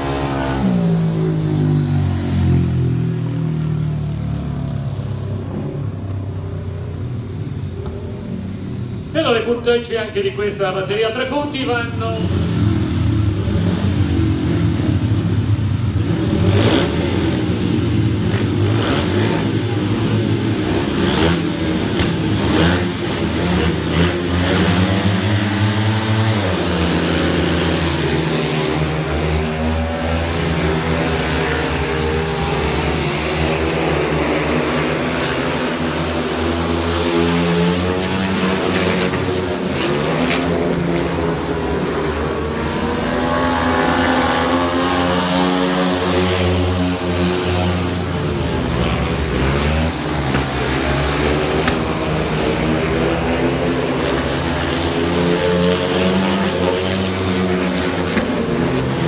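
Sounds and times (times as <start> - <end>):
motorcycle engines revving: 0.0 - 59.0.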